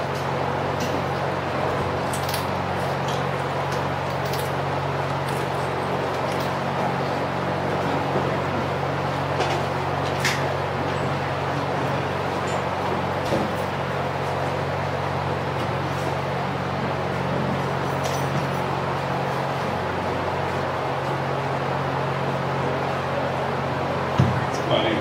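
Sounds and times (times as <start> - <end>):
low electrical hum: 0.0 - 25.0.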